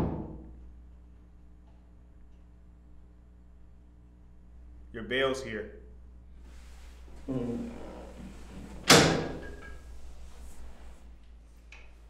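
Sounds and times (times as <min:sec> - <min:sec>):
heavy metal door banging: 0:00.0 - 0:00.5, 0:08.7 - 0:09.8.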